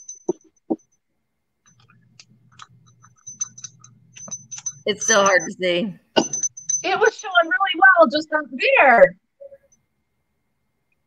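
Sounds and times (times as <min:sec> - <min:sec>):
faint low hum: 0:00.0 - 0:11.0
glass hand bell tinkling: 0:02.6 - 0:05.6, 0:06.2 - 0:07.6.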